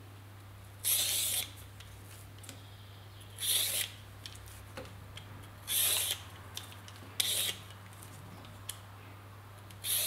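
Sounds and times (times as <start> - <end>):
vegetable peeler scraping radish: 0.8 - 1.6, 3.4 - 4.0, 5.6 - 6.3, 7.2 - 7.7, 9.8 - 10.0.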